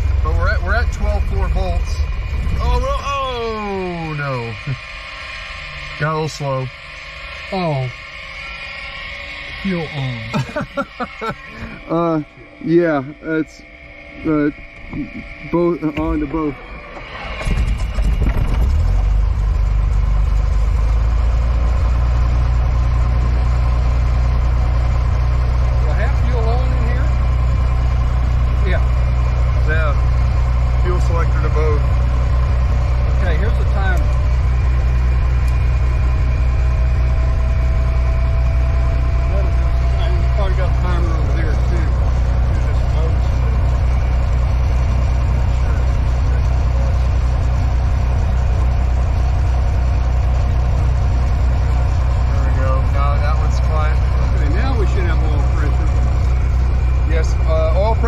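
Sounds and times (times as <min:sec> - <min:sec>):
propeller engine droning: 0:00.0 - 0:58.0.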